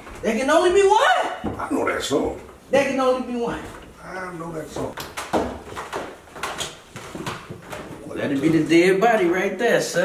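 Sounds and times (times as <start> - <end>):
footsteps down a staircase: 4.7 - 8.2.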